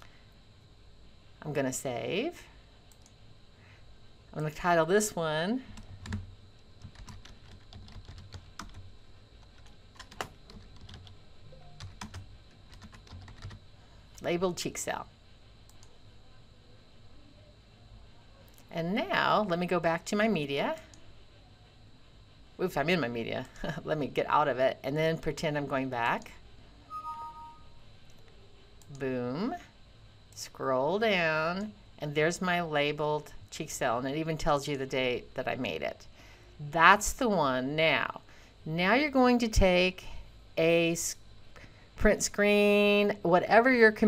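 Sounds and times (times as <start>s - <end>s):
computer keyboard typing: 5.8s - 8.8s, 9.5s - 13.6s
electronic two-note chime: 26.9s - 27.7s.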